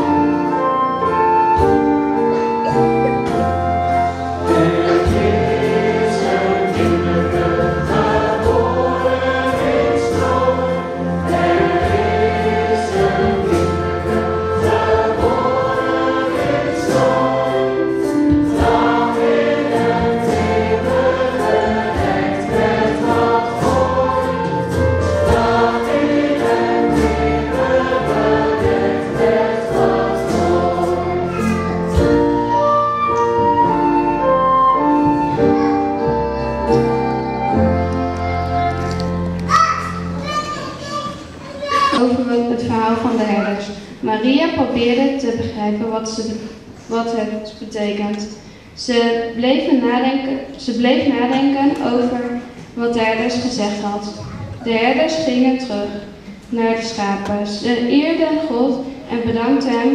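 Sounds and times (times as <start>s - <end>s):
flute: 0.0s - 5.0s, 31.0s - 40.0s
accordion: 0.0s - 39.4s
double bass: 0.0s - 39.5s
drum kit: 3.1s - 32.9s
group of singers: 3.4s - 32.5s.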